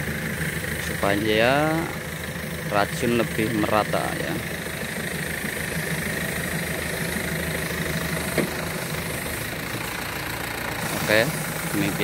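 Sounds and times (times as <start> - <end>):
engine-driven water pump running: 0.0 - 12.0.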